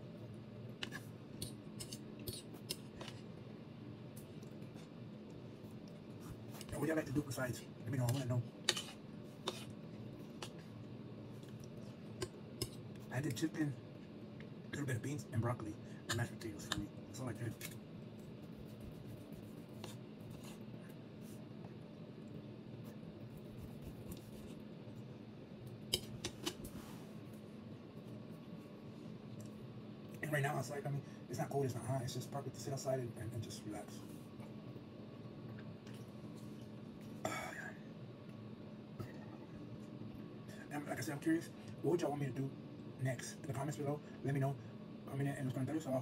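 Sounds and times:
knife scraping plate: 8.1s - 9.7s.

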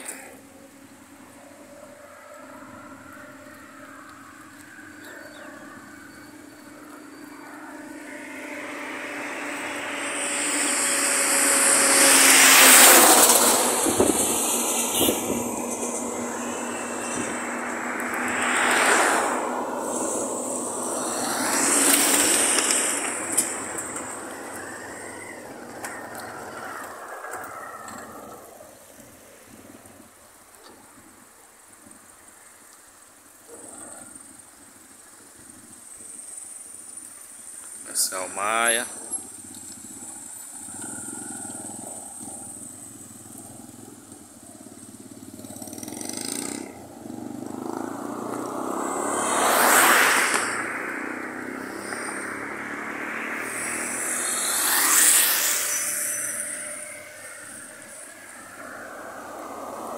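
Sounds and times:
trucks driving past: 0.0s - 31.2s, 33.3s - 59.9s.

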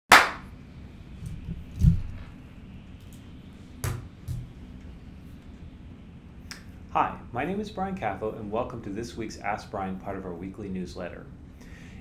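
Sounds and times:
sharp hand clap: 0.1s - 0.5s.

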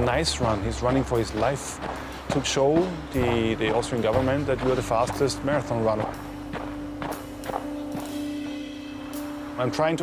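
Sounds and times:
runner's footfalls: 0.0s - 8.6s
background music low note: 0.0s - 10.0s.

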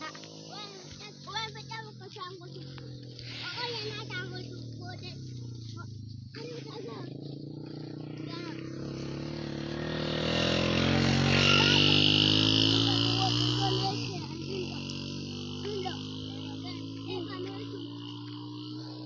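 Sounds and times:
vehicle engine passing by: 0.0s - 19.0s.

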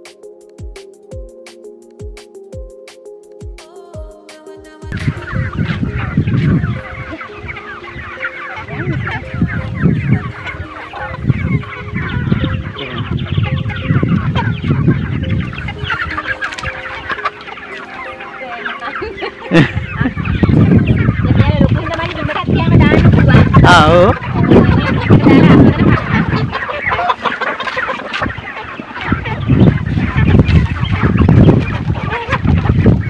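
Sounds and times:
chickens clucking: 4.4s - 33.0s.

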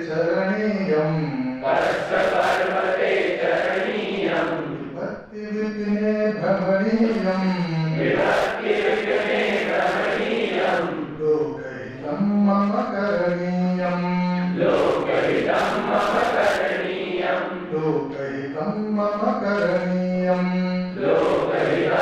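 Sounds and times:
man chanting: 0.0s - 9.0s, 10.7s - 16.7s, 17.3s - 21.2s.

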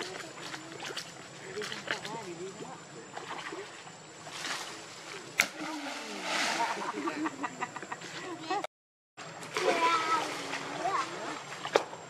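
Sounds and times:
water splashing: 0.0s - 7.3s, 9.4s - 12.0s.

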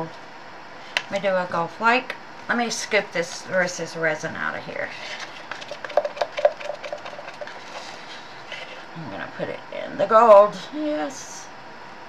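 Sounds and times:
stir stick scraping plastic cup: 5.0s - 8.8s.

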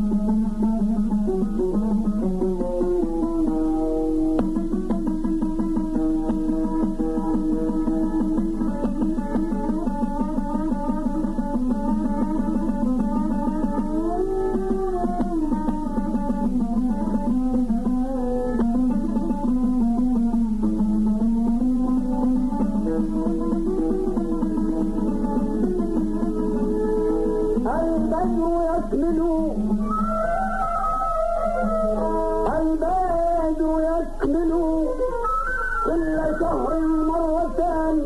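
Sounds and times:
string instrument melody: 0.0s - 38.0s.

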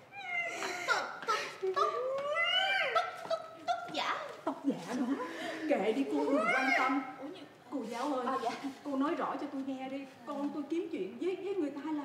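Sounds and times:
wordless vocal cries: 0.1s - 3.9s.

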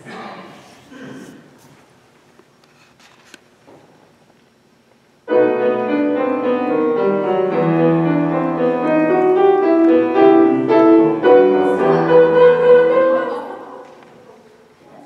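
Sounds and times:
piano playing: 5.3s - 13.8s.

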